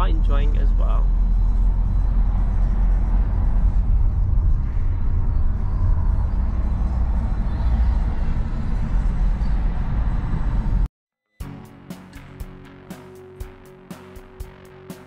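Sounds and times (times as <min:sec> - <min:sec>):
road and engine rumble in car: 0:00.0 - 0:10.9.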